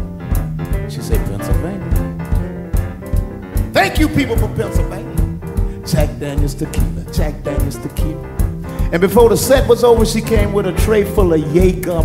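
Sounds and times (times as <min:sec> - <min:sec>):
live blues band playing: 0:00.0 - 0:12.0
steady drum beat: 0:00.0 - 0:12.0
man speaking: 0:00.9 - 0:01.9, 0:03.8 - 0:05.2.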